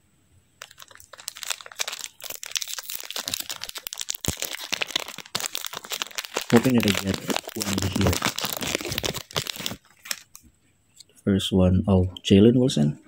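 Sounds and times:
foil wrapper crinkling: 0.6s - 10.4s.

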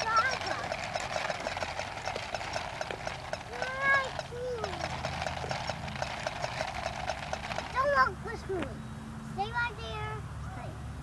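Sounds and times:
toy walking mechanism clicking: 0.0s - 8.1s.

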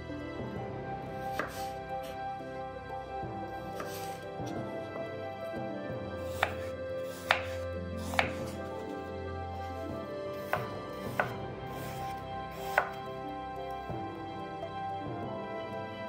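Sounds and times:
knife chopping on wooden board: 1.2s - 2.2s, 3.7s - 4.6s, 6.2s - 8.6s, 9.8s - 13.0s.

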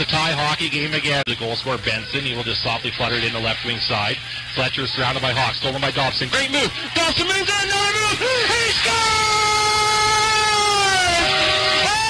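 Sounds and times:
goal celebration music over pa: 0.0s - 12.0s
crowd cheering: 5.9s - 12.0s.

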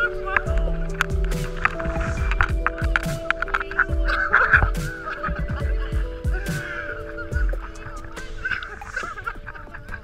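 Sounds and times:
sustained background music chords: 0.0s - 10.0s
water sloshing and gurgling: 0.0s - 10.0s.

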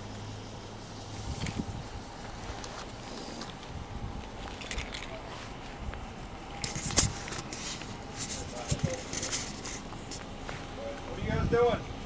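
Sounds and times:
outdoor background noise: 0.0s - 12.0s
faint scuffs and rustles: 1.0s - 11.2s.

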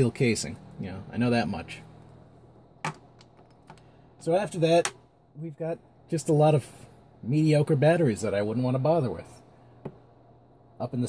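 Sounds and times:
faint tap: 9.8s - 10.1s.

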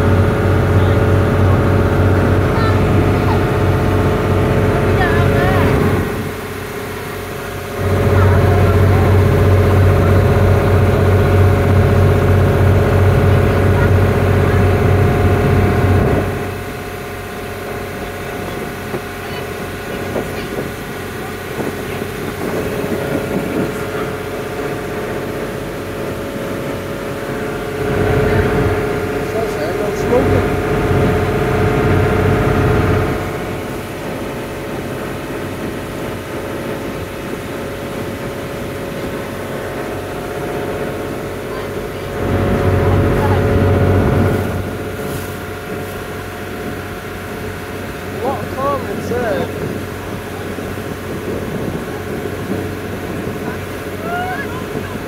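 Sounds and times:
boat engine running: 0.0s - 55.0s
wash of boat wake: 0.0s - 55.0s.

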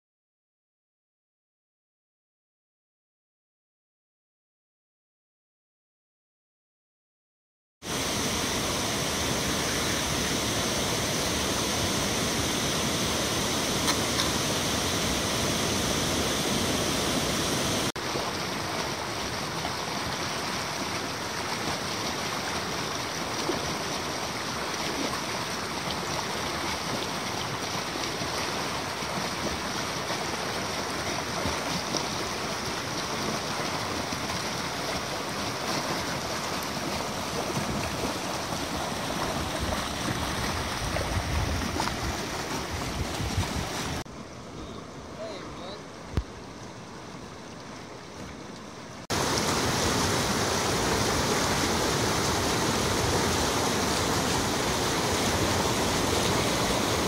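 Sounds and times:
river water pouring over weir: 7.8s - 57.0s
water running through rapid: 7.8s - 57.0s.

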